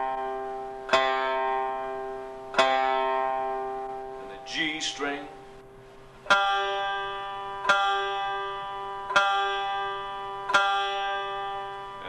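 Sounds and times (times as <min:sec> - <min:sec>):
banjo strings plucked: 0:00.0 - 0:05.4, 0:06.2 - 0:12.0.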